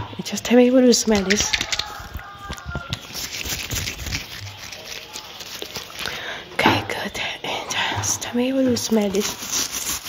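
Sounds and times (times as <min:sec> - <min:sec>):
latex glove crinkles: 0:01.1 - 0:06.4, 0:08.7 - 0:10.0.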